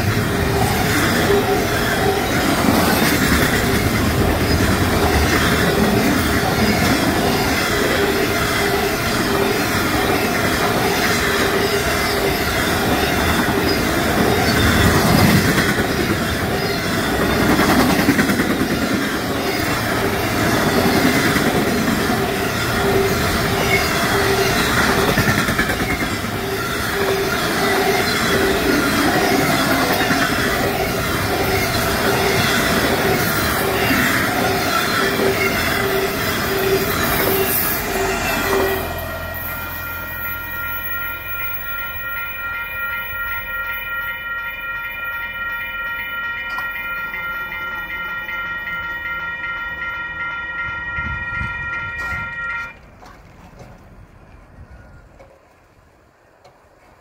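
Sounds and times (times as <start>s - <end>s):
freight train wheels rumbling on rail: 0.0s - 57.0s
distant train horn: 26.2s - 53.0s.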